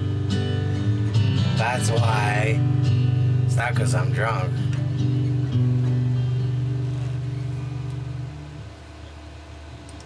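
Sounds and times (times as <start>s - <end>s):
guitar chord ringing: 0.0s - 10.0s.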